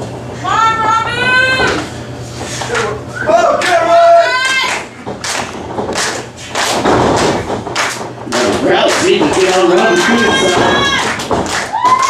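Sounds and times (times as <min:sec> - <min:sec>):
thuds on ring canvas: 0:06.7 - 0:08.4.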